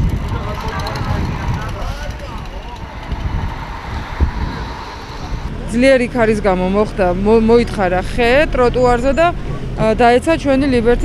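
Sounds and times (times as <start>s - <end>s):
people talking: 0.0s - 3.4s, 4.5s - 11.0s
low rumble: 0.0s - 11.0s.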